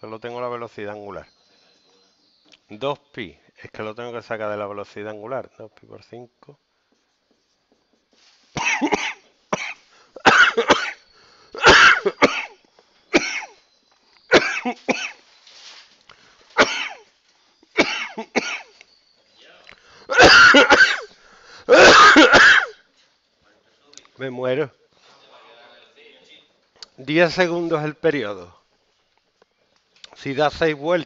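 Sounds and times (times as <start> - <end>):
person coughing: 8.6 - 11.0, 11.6 - 13.6, 14.3 - 15.2, 16.6 - 17.1, 17.8 - 18.7, 20.1 - 21.1, 21.7 - 22.8.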